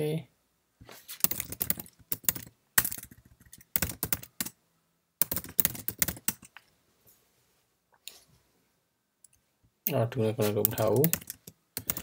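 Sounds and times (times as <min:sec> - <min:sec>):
typing on computer keyboard: 0:01.2 - 0:04.6, 0:05.2 - 0:06.6, 0:10.6 - 0:12.0.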